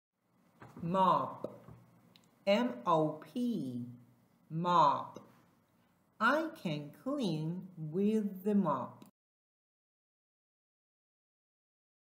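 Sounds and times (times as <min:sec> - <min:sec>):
spoken word syllable: 0:00.8 - 0:01.6, 0:02.5 - 0:05.3.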